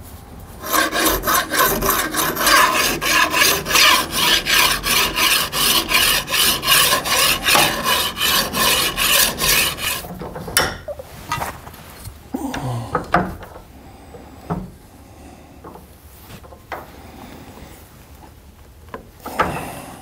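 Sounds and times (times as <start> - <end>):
hand file rasping on metal: 0.6 - 10.1.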